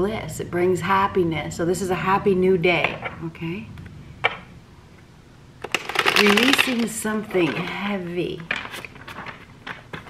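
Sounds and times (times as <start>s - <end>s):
cards being riffle-shuffled: 8.4s - 10.0s.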